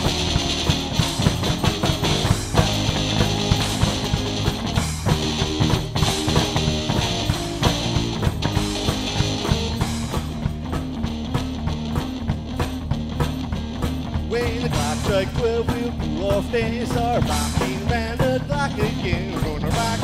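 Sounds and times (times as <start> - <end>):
electric guitar: 0.0 - 20.0.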